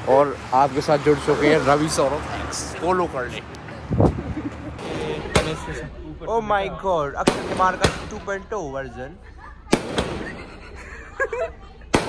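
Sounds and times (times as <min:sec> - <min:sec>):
firecracker bangs with echo: 0:07.2 - 0:08.2, 0:09.7 - 0:10.4.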